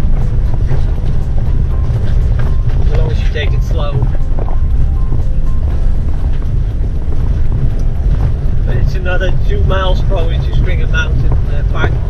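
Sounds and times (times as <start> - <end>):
low rumble of engine and tyres: 0.0 - 12.0
van driving on gravel: 0.0 - 12.0.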